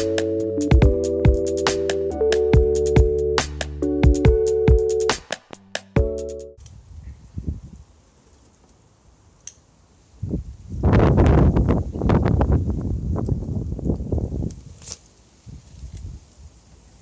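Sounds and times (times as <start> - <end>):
foliage rustling and crackling: 12.8 - 17.0.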